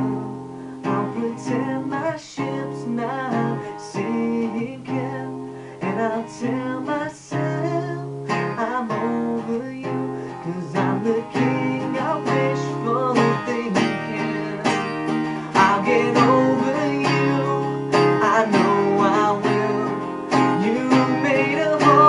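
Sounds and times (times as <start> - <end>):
acoustic guitar strumming: 0.0 - 22.0
man singing: 0.0 - 22.0.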